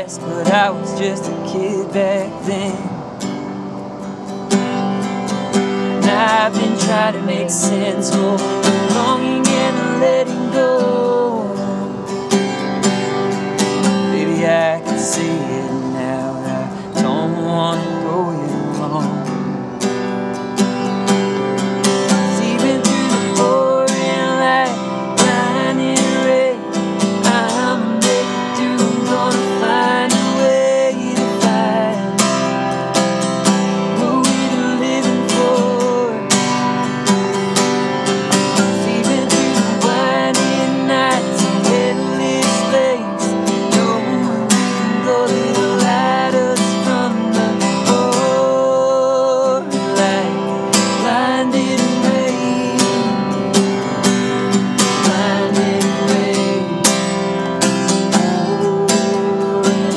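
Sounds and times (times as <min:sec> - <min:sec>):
acoustic guitar strumming: 0:00.0 - 0:59.9
wordless vocal melody: 0:00.0 - 0:59.9.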